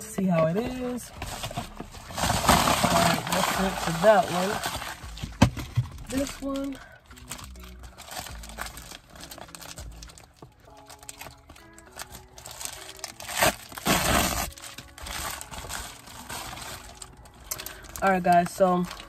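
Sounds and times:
plastic rustling and tearing: 0:00.3 - 0:19.0
plastic mailer bag crinkling: 0:01.2 - 0:19.0.

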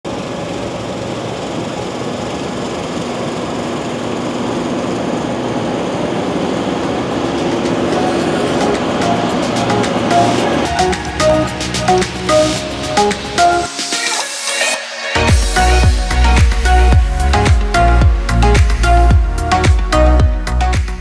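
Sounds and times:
background music: 0:06.8 - 0:21.0.

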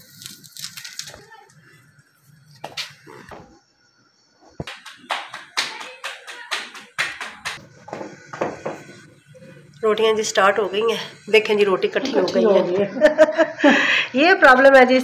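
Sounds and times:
hands slapping dough: 0:04.5 - 0:07.6.

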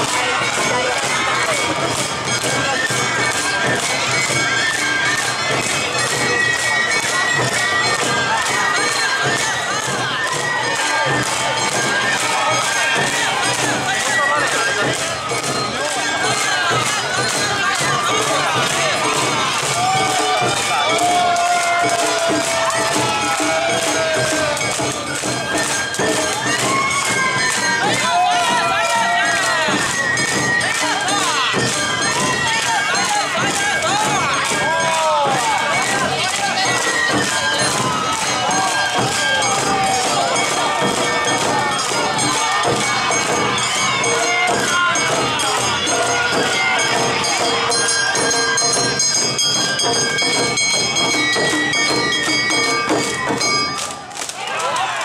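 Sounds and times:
children shouting dance calls: 0:00.0 - 0:55.0
crowd noise: 0:00.0 - 0:55.0
shamisen and drum music: 0:00.0 - 0:55.0.

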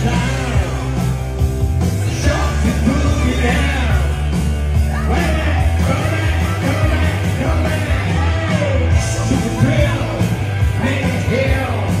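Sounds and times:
loud rock music: 0:00.0 - 0:12.0
person singing: 0:02.0 - 0:12.0.

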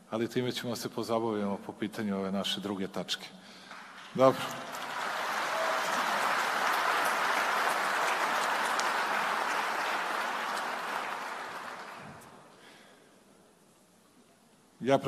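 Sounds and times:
audience applauding: 0:03.7 - 0:12.5.

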